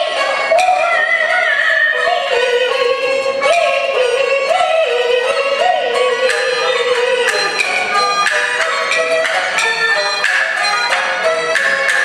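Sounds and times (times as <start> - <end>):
string accompaniment: 0.0 - 12.0.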